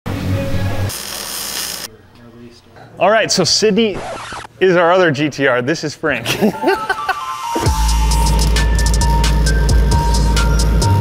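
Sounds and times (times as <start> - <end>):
harsh high hiss: 0.9 - 1.9
power tool buzzing: 0.9 - 1.9.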